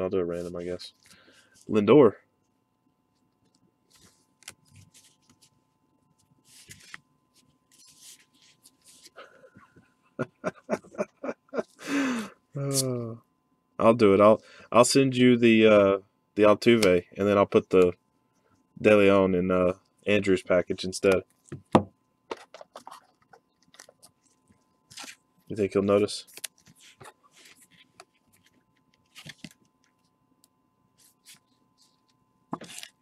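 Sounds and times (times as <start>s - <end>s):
trading cards rustling: 6.2s - 9.2s, 22.3s - 30.1s, 31.0s - 33.0s
man laughing: 9.2s - 12.2s.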